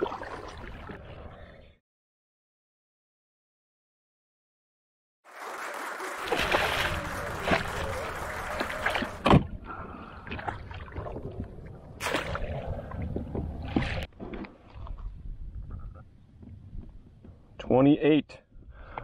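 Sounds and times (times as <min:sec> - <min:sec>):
fish thrashing and splashing: 0:06.2 - 0:09.2.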